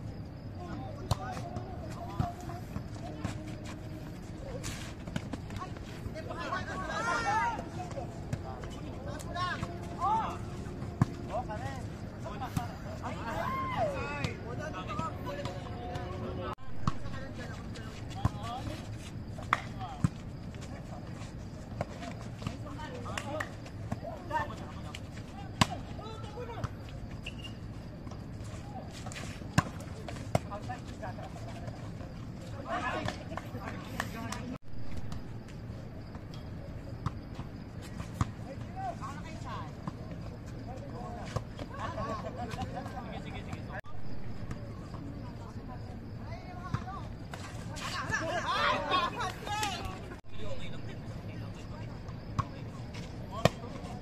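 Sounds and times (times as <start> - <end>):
players shouting: 5.5 - 16.6, 47.9 - 50.2.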